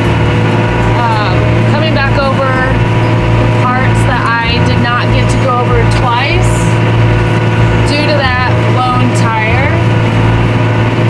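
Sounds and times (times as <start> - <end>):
tractor engine drone: 0.0 - 11.0
woman talking: 0.9 - 6.8, 7.8 - 9.9.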